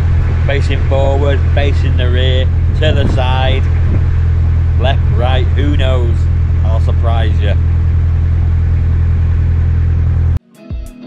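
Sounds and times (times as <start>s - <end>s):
boat diesel engine droning: 0.0s - 10.4s.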